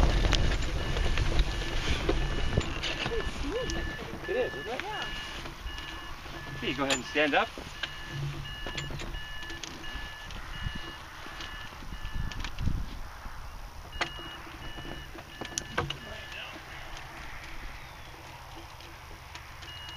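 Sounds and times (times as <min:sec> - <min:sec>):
variometer two-pitch beeps: 0:00.8 - 0:12.4, 0:13.9 - 0:16.5.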